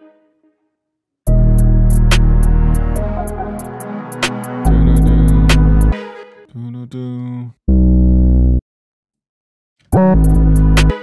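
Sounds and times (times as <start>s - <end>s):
drill beat with hi-hats and bass: 1.3s - 6.0s, 9.9s - 11.0s
deep bass note: 4.7s - 5.9s, 7.7s - 8.6s.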